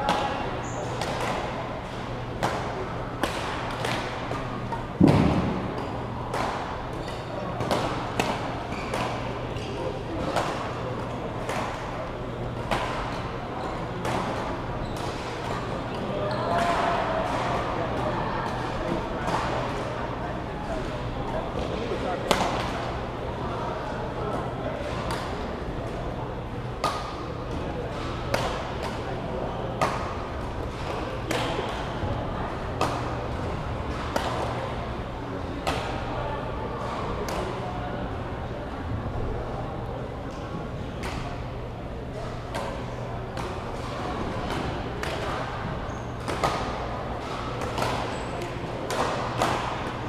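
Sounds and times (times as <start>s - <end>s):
murmur of voices: 0.0s - 50.0s
rackets hitting shuttlecock: 2.4s - 12.0s, 33.9s - 34.7s, 46.1s - 50.0s
racket hitting shuttlecock: 46.2s - 50.0s.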